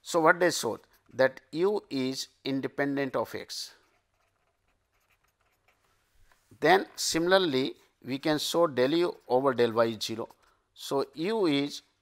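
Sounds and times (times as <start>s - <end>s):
pen scratching on paper: 3.8s - 6.0s.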